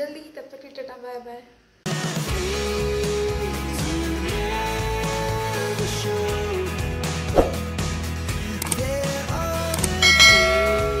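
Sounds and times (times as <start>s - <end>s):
background music: 1.9s - 11.0s
quick clicks: 8.6s - 8.9s, 9.7s - 10.0s
bright bell chime: 10.0s - 11.0s.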